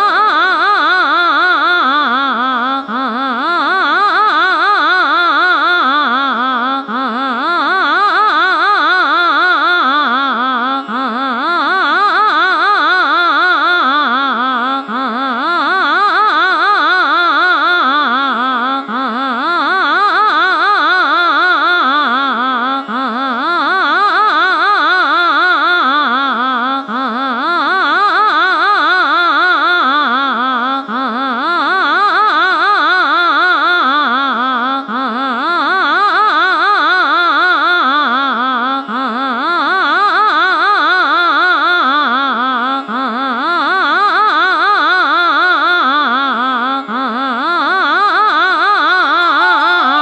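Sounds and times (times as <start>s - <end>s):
person singing fast classical vocal runs: 41.9s - 50.0s
faint steady drone: 46.8s - 50.0s
woman singing fast runs: 48.3s - 50.0s
steady drone: 48.7s - 50.0s.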